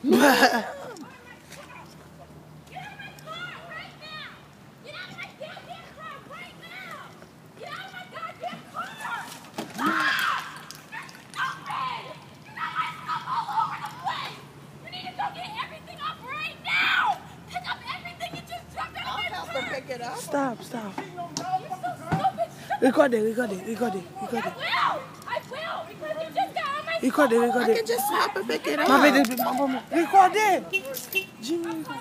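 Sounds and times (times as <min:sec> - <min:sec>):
distant high-pitched shouting: 0:02.7 - 0:32.0.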